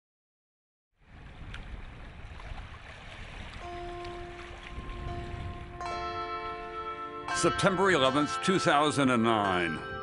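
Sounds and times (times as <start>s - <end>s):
soft instrumental music: 3.6s - 10.0s.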